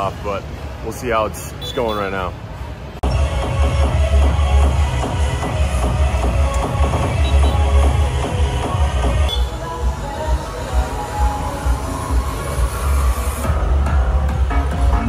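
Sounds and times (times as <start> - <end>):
electronic dance music: 3.0 - 9.3, 10.2 - 15.0.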